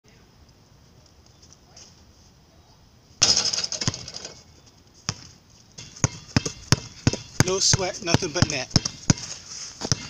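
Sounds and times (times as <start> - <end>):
basketball hoop rattling crash: 3.2 - 4.4
ball bouncing on asphalt: 5.1 - 10.0.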